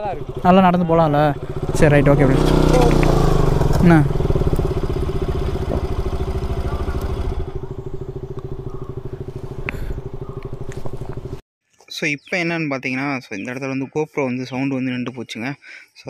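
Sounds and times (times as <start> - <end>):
motorcycle engines idling: 0.0 - 11.4.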